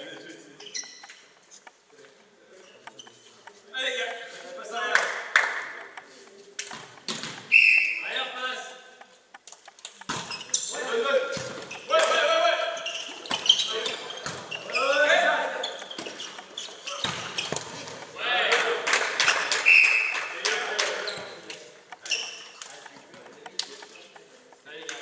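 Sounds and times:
volleyball being struck: 0:06.7 - 0:08.0, 0:10.0 - 0:10.4.

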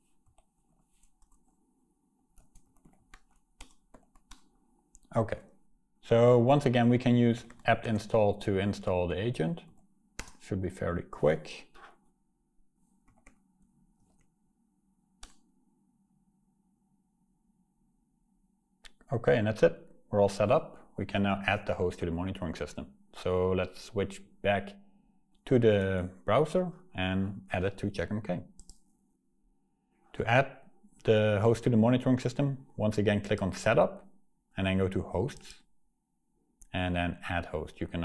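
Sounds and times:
faint typing on keyboard: 0:00.0 - 0:01.6, 0:02.3 - 0:05.2, 0:07.3 - 0:08.2, 0:09.6 - 0:10.4, 0:13.0 - 0:14.4, 0:15.2 - 0:15.5, 0:28.5 - 0:28.9, 0:35.3 - 0:35.7.

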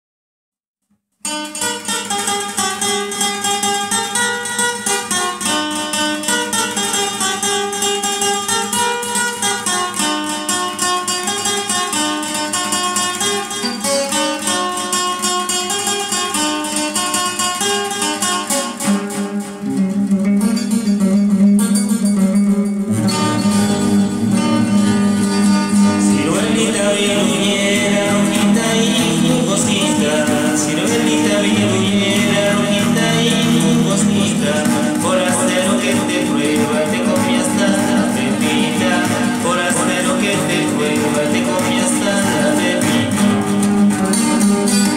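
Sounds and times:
acoustic guitar picked melody: 0:00.9 - 0:44.9.

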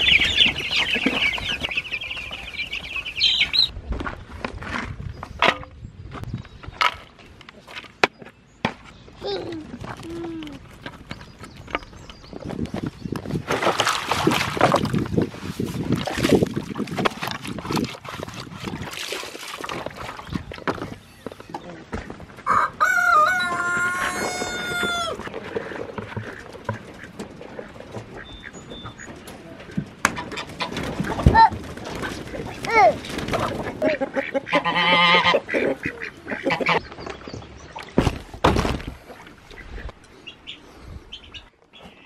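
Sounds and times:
chickens clucking: 0:00.0 - 0:03.7, 0:20.0 - 0:37.4
rooster crowing: 0:22.4 - 0:25.2.

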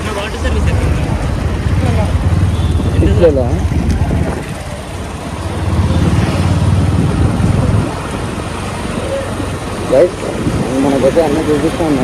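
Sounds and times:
motorcycle engine rumble: 0:00.0 - 0:12.0
road and wind noise: 0:00.0 - 0:12.0.

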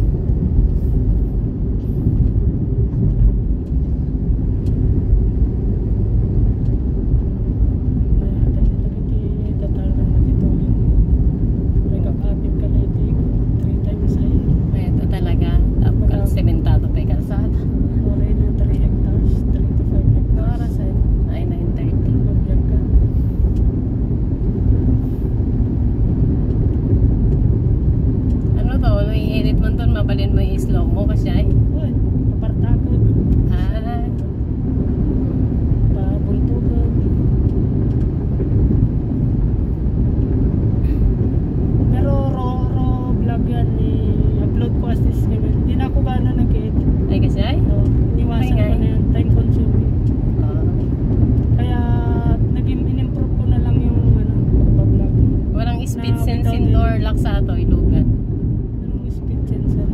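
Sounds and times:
road and engine noise in cabin: 0:00.0 - 0:59.9.

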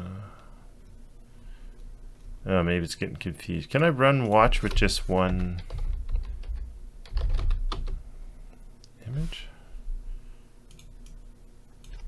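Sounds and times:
keyboard typing: 0:04.6 - 0:08.0.

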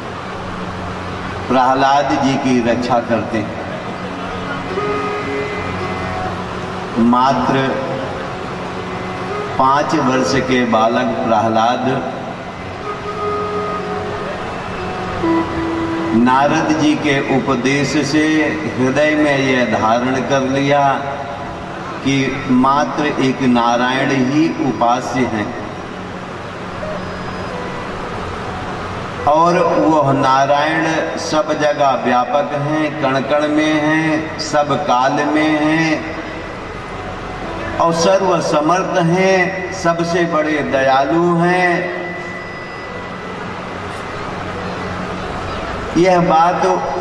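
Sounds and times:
sound system hum: 0:00.0 - 0:47.0
faint held tones: 0:12.0 - 0:18.7, 0:41.1 - 0:46.0.

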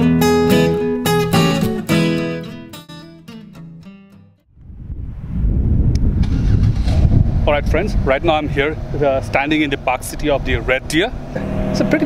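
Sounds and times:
wind buffeting microphone: 0:04.5 - 0:12.0
man talking: 0:07.4 - 0:11.2.

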